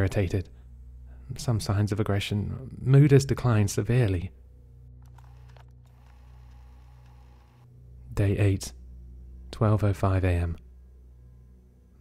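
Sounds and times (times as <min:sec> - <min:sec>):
dark ambient music drone: 0:00.0 - 0:12.0.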